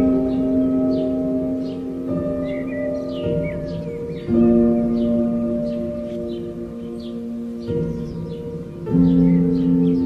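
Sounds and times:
light bird chirps: 0.0s - 10.0s.

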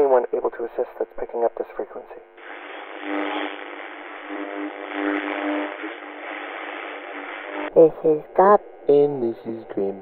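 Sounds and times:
faint steady radio tones: 0.0s - 10.0s
radio static hiss: 0.0s - 10.0s.

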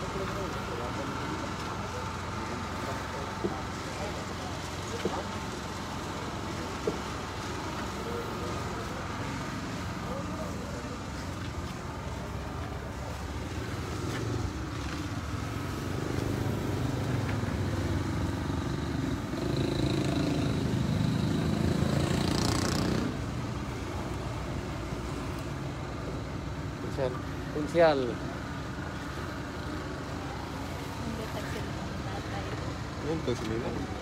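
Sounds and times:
vehicle engine running: 0.0s - 34.0s.

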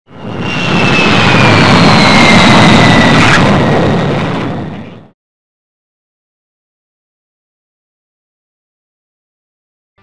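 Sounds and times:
high falling jet whine: 0.1s - 4.8s
jet aircraft roar: 0.1s - 5.1s.

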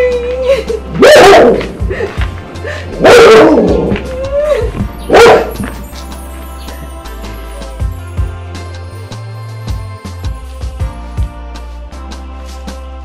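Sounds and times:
background music: 0.0s - 13.0s
dog barking loudly: 1.0s - 1.7s, 3.0s - 3.8s, 5.1s - 5.7s.

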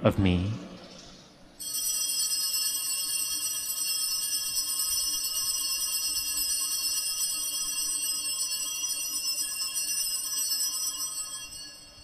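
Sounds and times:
altar bells jingling: 1.6s - 12.0s.

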